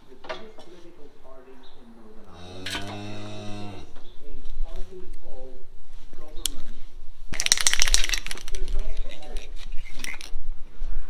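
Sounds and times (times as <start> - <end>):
cow mooing: 2.3 - 4.0.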